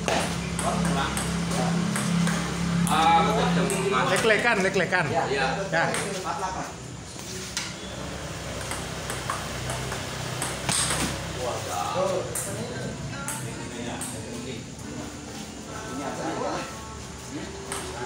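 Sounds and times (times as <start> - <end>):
table tennis ball clicking: 0.0 - 3.0, 8.6 - 11.2
voices in background: 0.6 - 8.1, 11.2 - 18.0.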